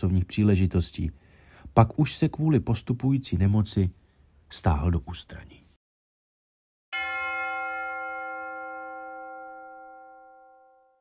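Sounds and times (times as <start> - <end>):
bell-like chime ringing: 6.9 - 11.0.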